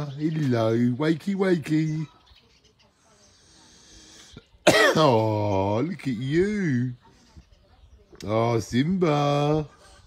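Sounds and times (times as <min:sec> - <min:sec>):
man coughing: 0:04.6 - 0:05.3.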